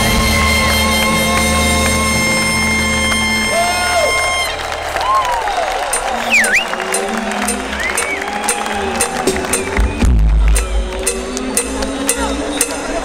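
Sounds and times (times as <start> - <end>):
live band sustained chord: 0.0 - 4.8
audience cheering and whistling: 0.0 - 13.0.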